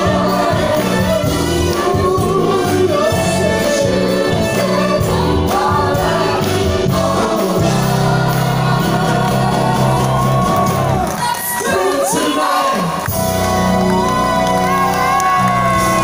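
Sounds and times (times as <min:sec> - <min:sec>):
group of people singing: 0:00.0 - 0:13.5
upbeat band accompaniment: 0:00.0 - 0:16.0.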